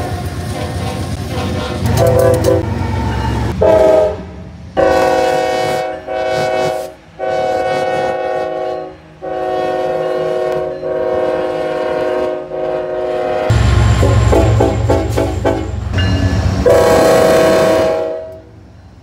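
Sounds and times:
locomotive rumble: 0:00.0 - 0:19.0
locomotive air horn blasts: 0:01.3 - 0:02.7, 0:03.5 - 0:15.8, 0:16.6 - 0:18.5.

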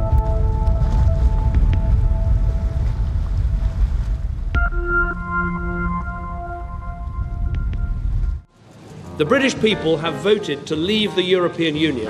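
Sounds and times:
wind buffeting microphone: 0:00.0 - 0:04.7, 0:06.3 - 0:08.5.

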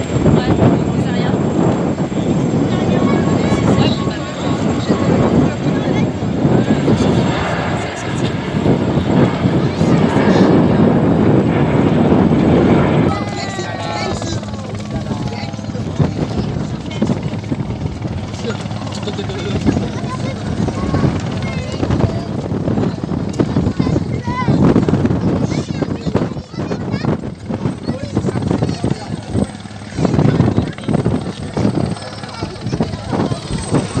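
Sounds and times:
helicopter rotor chop: 0:00.0 - 0:34.0.

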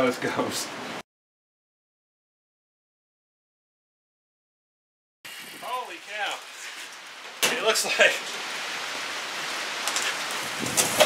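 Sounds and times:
steady rain hiss: 0:05.3 - 0:11.0.

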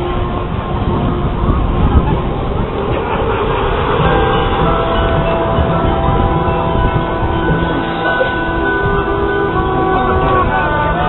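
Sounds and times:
metal mallet instruments and chimes: 0:03.8 - 0:10.6.

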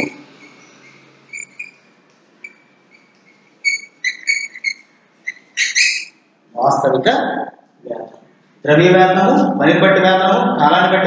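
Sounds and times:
small bird chirping: 0:00.0 - 0:06.3.

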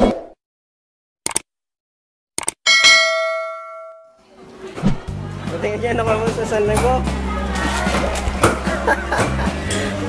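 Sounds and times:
bell-like chime ding: 0:02.7 - 0:04.2.

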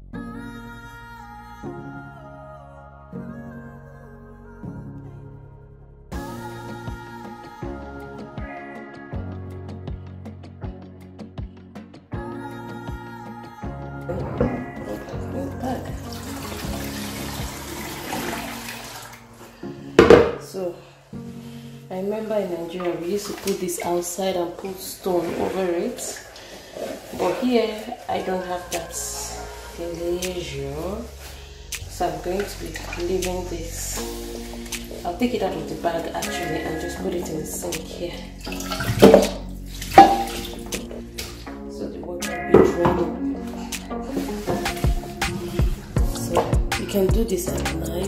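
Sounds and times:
background music: 0:00.0 - 0:48.0
wet slurry pouring: 0:14.1 - 0:20.2, 0:22.7 - 0:30.5, 0:31.1 - 0:41.5, 0:43.4 - 0:46.5
water splashing and running off: 0:14.5 - 0:20.2, 0:22.8 - 0:41.5.

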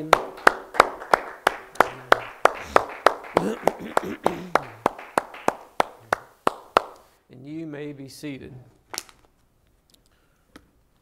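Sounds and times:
person clapping hands: 0:00.0 - 0:07.1.

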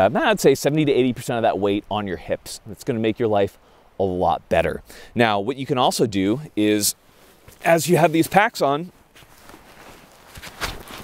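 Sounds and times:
rucksack fabric rustling: 0:07.0 - 0:11.0
footfalls in dry grass: 0:09.0 - 0:11.0.

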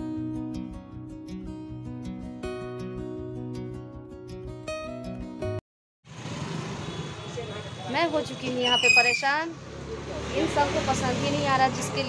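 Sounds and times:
traffic hum: 0:06.1 - 0:12.0
woman speaking: 0:07.9 - 0:09.6, 0:10.3 - 0:12.0.

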